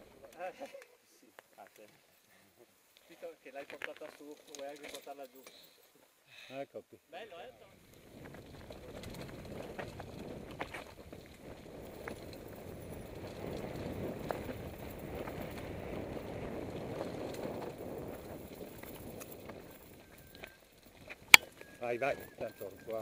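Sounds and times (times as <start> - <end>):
bike tyres rolling over dirt: 7.8 - 23.0
bike clicks and rattles: 7.9 - 21.7.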